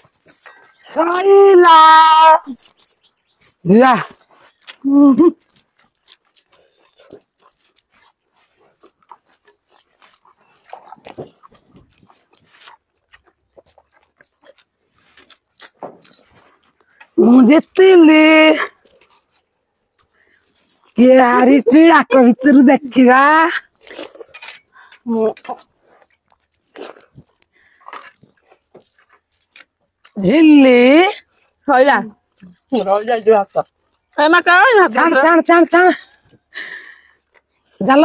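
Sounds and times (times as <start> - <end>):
people chewing food: 0.0 - 2.0, 2.6 - 38.0
mouth smacks and clicks: 23.7 - 30.2.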